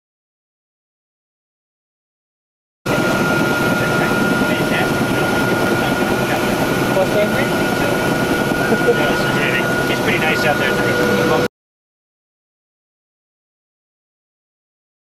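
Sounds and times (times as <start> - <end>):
helicopter engine and rotor: 2.9 - 11.5
high steady whine: 2.9 - 11.5.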